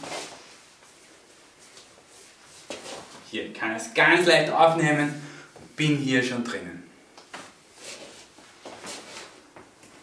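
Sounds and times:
clothing rustle: 0:00.0 - 0:03.3, 0:07.3 - 0:10.0
shoe scuffs on hard floor: 0:01.7 - 0:03.2, 0:07.3 - 0:09.4.

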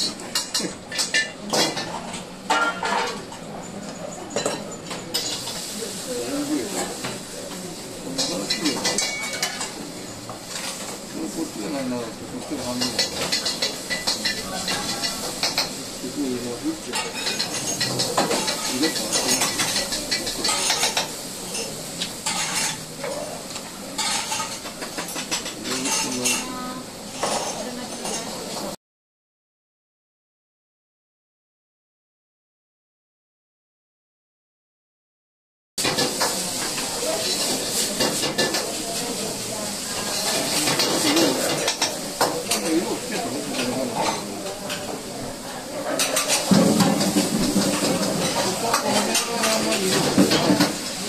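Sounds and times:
kitchen utensils clattering: 0:00.0 - 0:28.8, 0:35.8 - 0:51.0
food sizzling in a wok: 0:04.8 - 0:28.8, 0:35.8 - 0:51.0.

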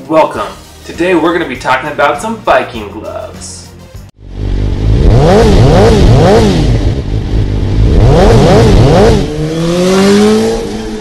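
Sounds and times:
motorcycle engine revving: 0:04.2 - 0:11.0.

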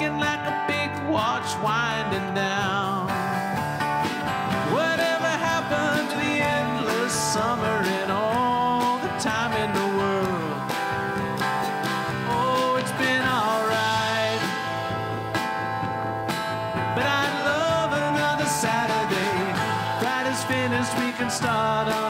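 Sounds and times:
acoustic guitar: 0:00.0 - 0:22.0
bass: 0:00.0 - 0:22.0
drums: 0:00.0 - 0:22.0.

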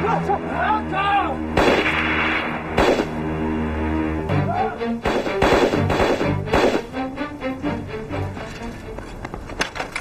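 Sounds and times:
dramatic background music: 0:00.0 - 0:09.0
pistol shots: 0:01.6 - 0:03.2, 0:05.0 - 0:06.9.

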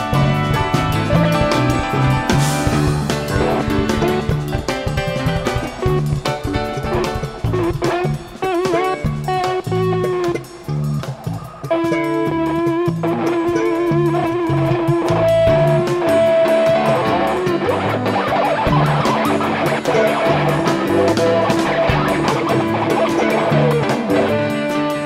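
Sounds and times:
bass guitar: 0:00.0 - 0:25.0
drums: 0:00.0 - 0:25.0
electric guitar: 0:00.0 - 0:25.0.

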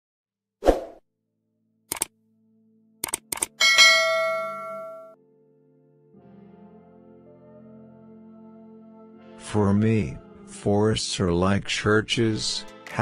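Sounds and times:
quick clicks: 0:01.9 - 0:02.1, 0:03.0 - 0:03.6
bright bell ding: 0:03.6 - 0:05.2.

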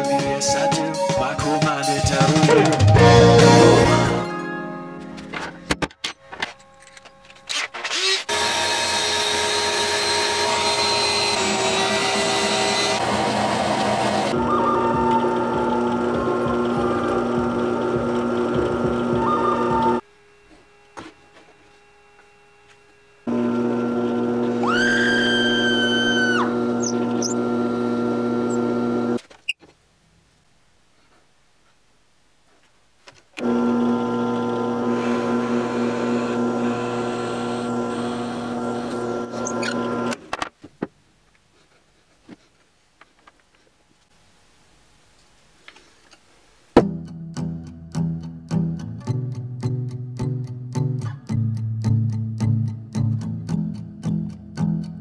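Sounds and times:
song with steady beat: 0:00.0 - 0:04.3
drill press motor humming: 0:08.2 - 0:29.2, 0:33.4 - 0:40.2
drill bit squealing: 0:24.4 - 0:28.9, 0:34.9 - 0:40.2.

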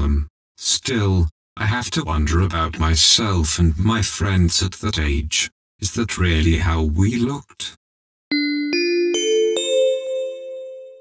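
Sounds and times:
rising bell-like chime: 0:08.3 - 0:11.0.

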